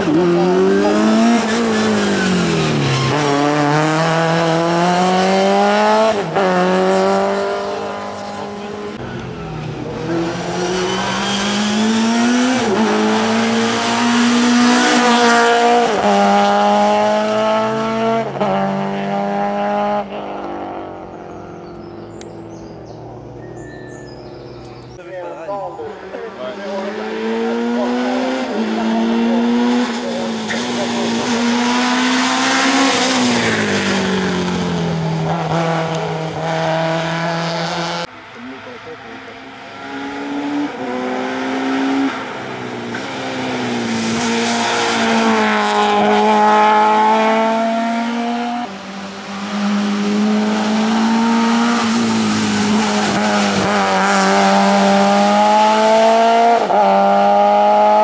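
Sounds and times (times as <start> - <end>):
car engines at full throttle: 0.0 - 58.0.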